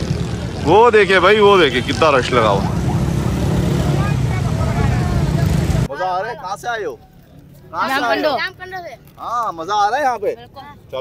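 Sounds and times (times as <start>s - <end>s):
faint crowd voices: 0.0s - 9.2s.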